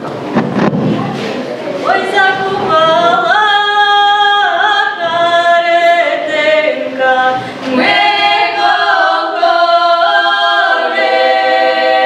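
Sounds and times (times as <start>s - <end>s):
women's choir singing a cappella: 1.8s - 12.0s
singers breathing: 7.4s - 7.7s.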